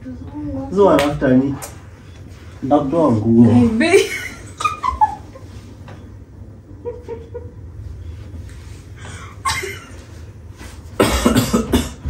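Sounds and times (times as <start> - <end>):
person coughing: 11.0 - 12.0.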